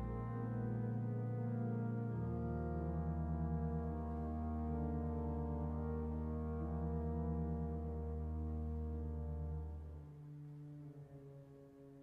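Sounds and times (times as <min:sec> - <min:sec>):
sustained low chords: 0:00.0 - 0:11.1.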